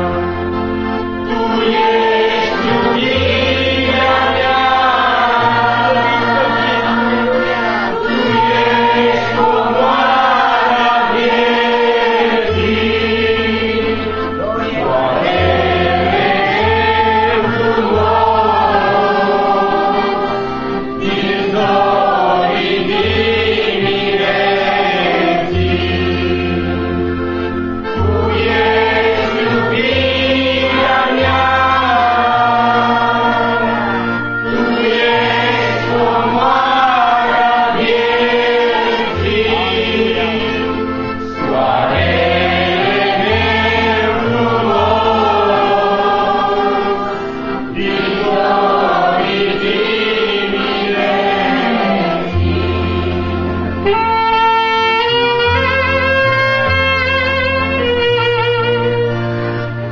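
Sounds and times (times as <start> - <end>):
congregation singing a hymn: 0.0 - 59.9
sustained instrumental bass line: 0.0 - 59.9.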